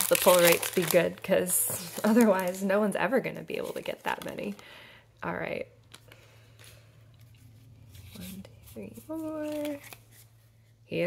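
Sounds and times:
cards and wrapper rustling: 0.0s - 2.8s, 5.8s - 10.8s.

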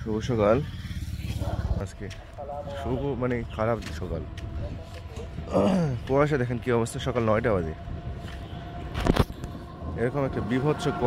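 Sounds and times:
pulsing vehicle engine rumble: 0.0s - 11.0s
man speaking: 1.3s - 7.7s.

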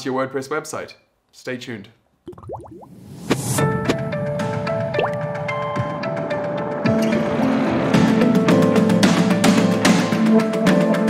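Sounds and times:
watery drip effects: 2.2s - 3.2s, 4.9s - 5.3s.

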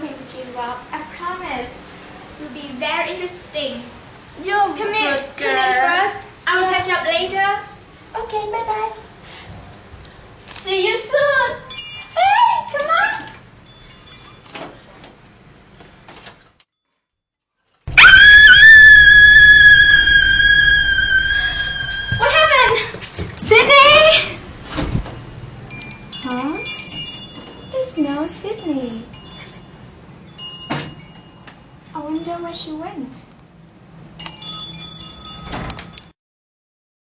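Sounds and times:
woman screaming: 17.9s - 23.0s.

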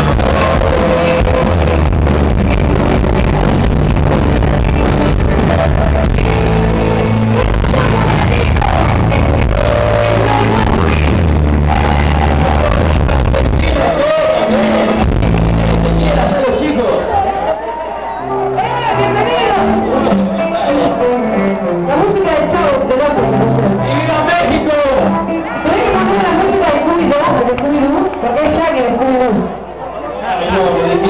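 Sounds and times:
man and woman singing: 0.0s - 1.9s, 4.6s - 16.3s
live band playing loud: 0.0s - 31.0s.

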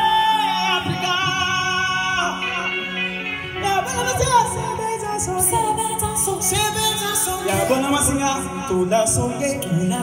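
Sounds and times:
backing music: 0.0s - 10.0s
person singing: 0.0s - 10.0s.

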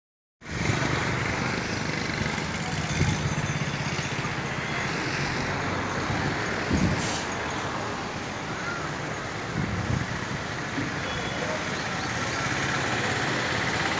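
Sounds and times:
traffic engine rumble: 0.4s - 13.9s.

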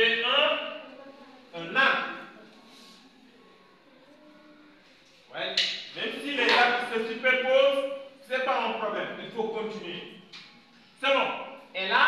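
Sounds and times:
man speaking: 1.6s - 2.2s, 5.3s - 10.2s.

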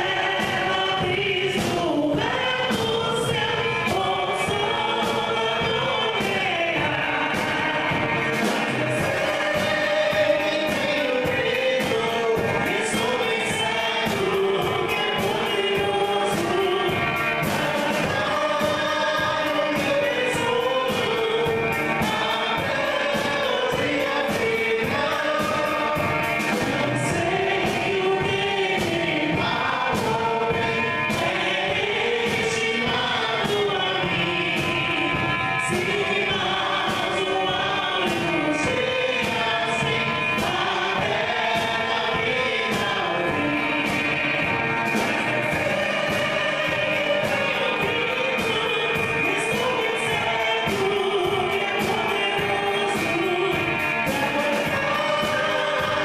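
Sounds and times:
woman singing into a microphone: 0.0s - 8.1s, 45.3s - 56.0s
congregation singing a hymn: 0.0s - 56.0s
drum kit with cymbals: 0.0s - 56.0s
electric guitar: 0.0s - 56.0s.

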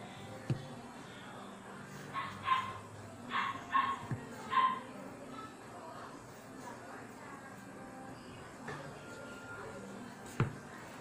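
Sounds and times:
dog barking: 2.1s - 4.9s.

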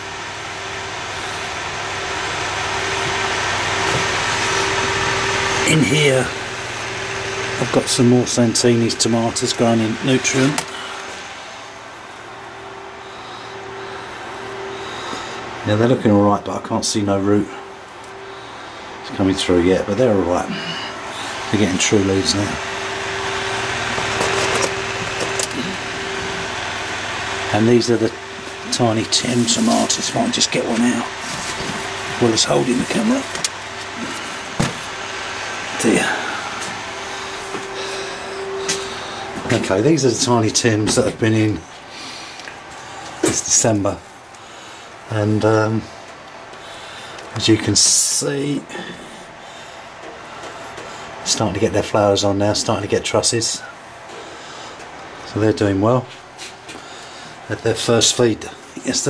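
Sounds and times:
fan whirring hum: 0.0s - 59.0s.

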